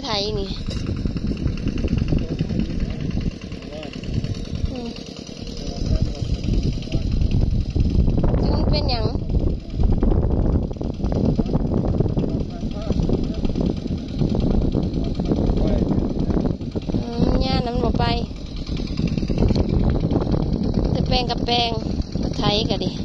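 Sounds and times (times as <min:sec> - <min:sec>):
voices speaking: 0:00.0 - 0:10.0, 0:11.0 - 0:23.0
diesel engine running: 0:00.0 - 0:23.0.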